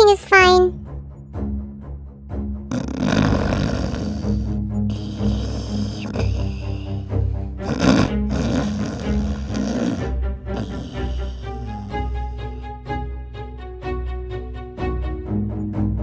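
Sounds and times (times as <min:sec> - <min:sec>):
background music: 0:00.0 - 0:16.0
cartoon snoring: 0:02.7 - 0:12.7.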